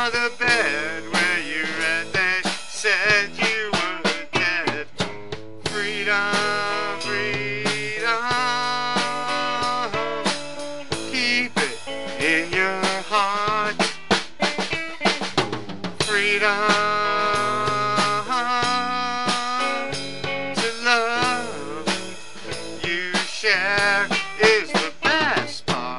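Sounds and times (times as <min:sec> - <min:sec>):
electric guitar lead: 0:00.0 - 0:02.4, 0:03.1 - 0:25.9
drums: 0:00.0 - 0:25.9.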